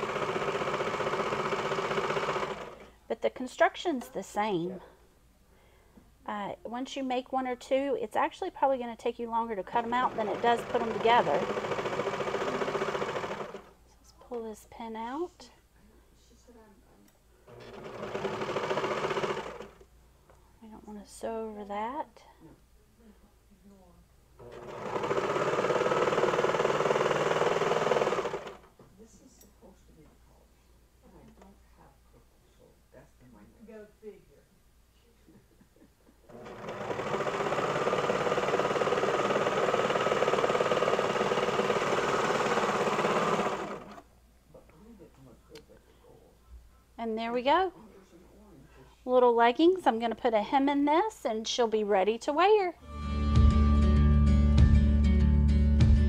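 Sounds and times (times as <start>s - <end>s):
serger machine stitching: 0.0s - 2.9s, 9.6s - 13.7s, 17.5s - 19.9s, 24.4s - 28.7s, 36.3s - 44.1s.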